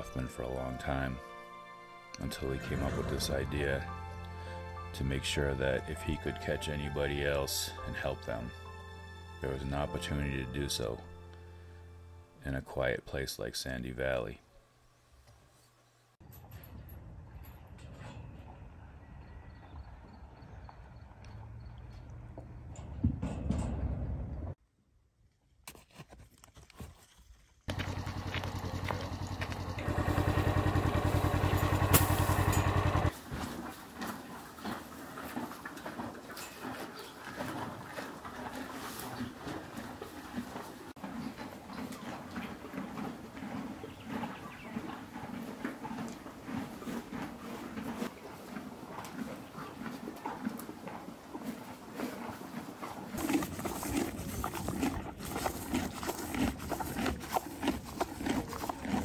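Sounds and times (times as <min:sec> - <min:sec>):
engine running: 0:27.7 - 0:33.2
horse chewing hay: 0:27.7 - 0:59.0.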